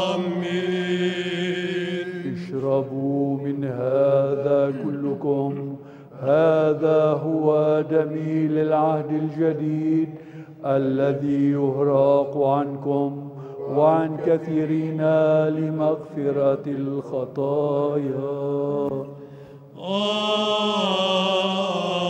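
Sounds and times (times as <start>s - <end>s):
voices chanting a melody: 0.0s - 2.8s
low held vocal drone: 0.0s - 22.0s.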